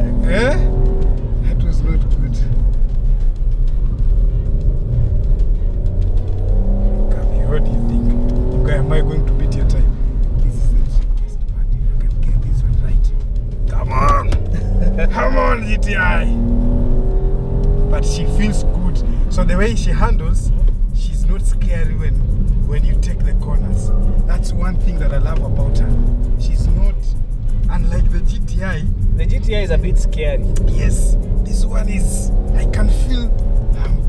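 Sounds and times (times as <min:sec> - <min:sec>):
voices: 0:00.0 - 0:02.7, 0:07.0 - 0:16.8, 0:17.7 - 0:34.0
car engine revving hard: 0:00.0 - 0:02.8, 0:03.8 - 0:11.2, 0:13.5 - 0:34.0.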